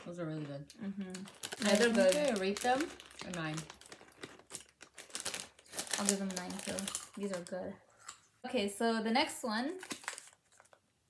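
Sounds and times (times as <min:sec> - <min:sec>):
plastic snack bag rustling: 0:00.0 - 0:07.6, 0:09.8 - 0:10.8.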